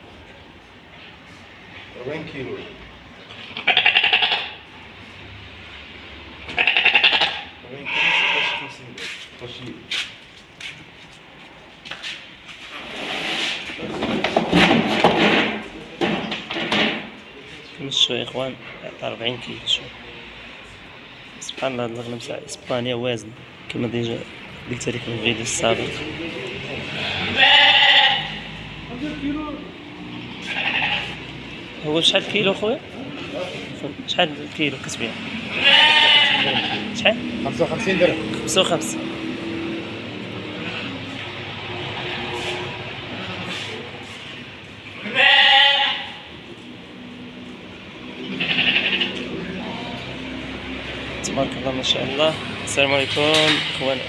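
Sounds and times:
sheep bleating: 3.4 - 4.6, 6.5 - 8.8, 26.8 - 28.5, 30.4 - 31.3, 35.5 - 37.0, 40.4 - 41.1, 45.0 - 46.3, 48.2 - 49.3
men's voices: 21.4 - 27.4, 36.4 - 40.7.

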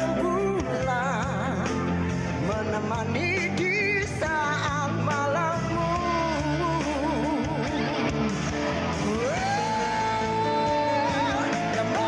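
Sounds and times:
rock ballad band music: 0.0 - 12.0.

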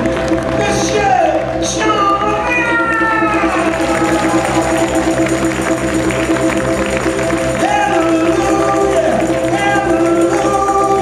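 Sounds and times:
accordion chords: 0.0 - 11.0
live country band music: 0.0 - 11.0.

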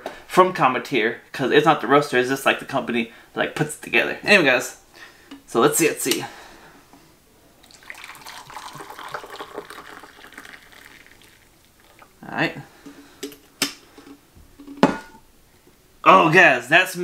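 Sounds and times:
hot water pouring into a mug: 7.6 - 12.2.

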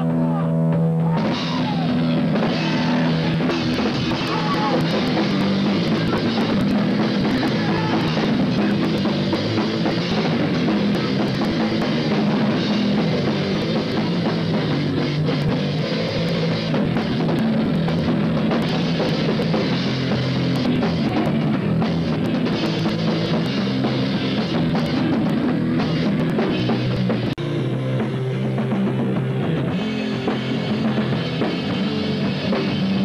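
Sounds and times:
drum kit: 0.0 - 33.0
electric guitar: 0.0 - 33.0
live rock band playing: 0.0 - 33.0.

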